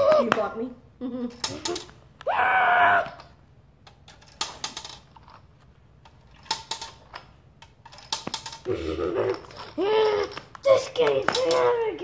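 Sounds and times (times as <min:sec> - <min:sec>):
plastic discs rattling down a grid: 0:03.8 - 0:08.7.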